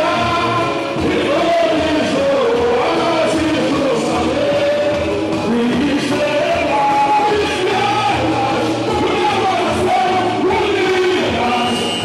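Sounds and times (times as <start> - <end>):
male lead singer on microphone: 0.0 - 12.0
many voices singing along: 0.0 - 12.0.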